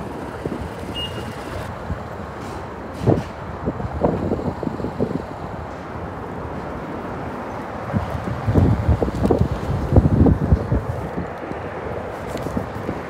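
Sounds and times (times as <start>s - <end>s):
city street traffic: 0.0s - 13.0s
short high beep: 0.9s - 1.6s.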